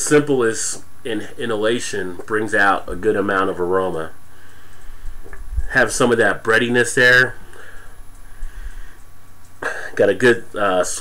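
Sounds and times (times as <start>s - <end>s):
person speaking: 0.0s - 9.0s, 9.6s - 11.0s
soft sniffing: 7.4s - 9.0s.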